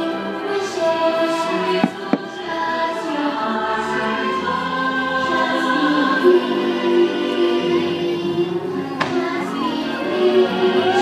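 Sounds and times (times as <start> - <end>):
choir singing long notes: 0.0 - 11.0.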